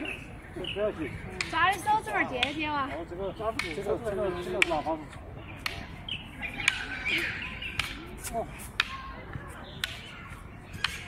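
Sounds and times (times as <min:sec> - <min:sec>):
bird calling: 0:03.6 - 0:08.2.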